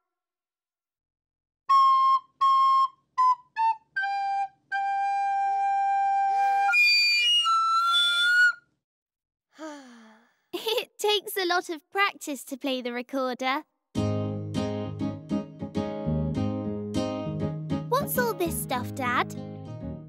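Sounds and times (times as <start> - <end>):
shrill squeaky recorder blast: 6.2 - 8.6.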